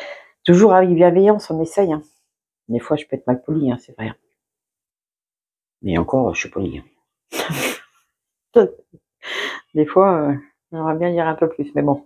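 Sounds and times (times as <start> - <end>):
woman speaking: 0.4 - 2.1, 8.6 - 8.9, 9.6 - 12.0.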